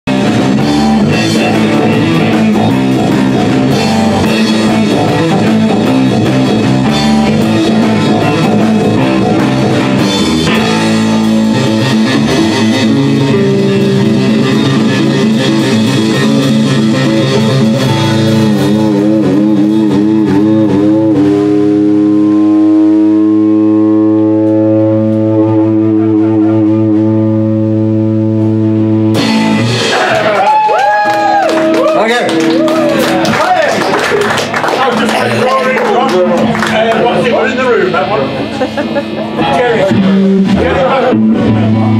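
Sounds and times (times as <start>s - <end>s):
drum kit playing: 0.1s - 41.9s
electric guitars: 0.1s - 41.9s.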